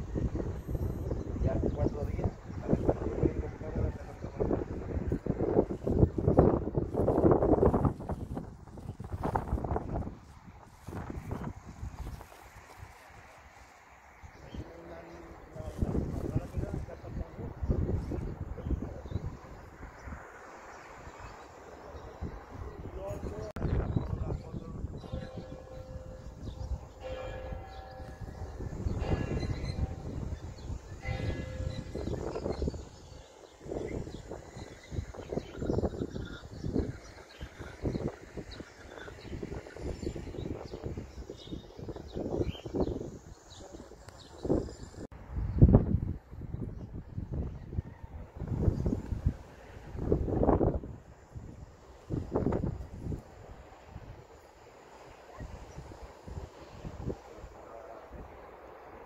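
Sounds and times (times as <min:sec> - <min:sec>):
wind rumble on microphone: 0:00.0 - 0:13.6, 0:14.2 - 0:54.4, 0:55.3 - 0:59.0
church bell tolling: 0:25.0 - 0:32.4.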